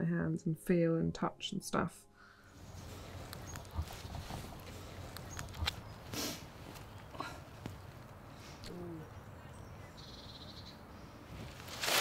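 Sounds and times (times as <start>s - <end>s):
leaves rustling: 2.6s - 8.6s, 11.0s - 12.0s.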